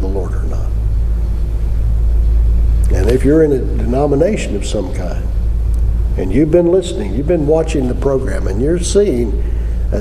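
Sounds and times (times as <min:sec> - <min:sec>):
man talking: 0:00.0 - 0:00.8, 0:02.8 - 0:05.4, 0:06.2 - 0:10.0
steady deep rumble: 0:00.0 - 0:10.0.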